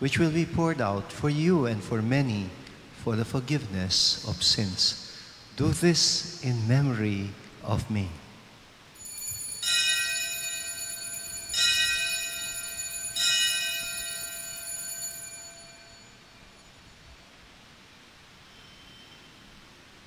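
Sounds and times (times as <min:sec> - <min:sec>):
altar bell ringing: 0:09.0 - 0:17.4.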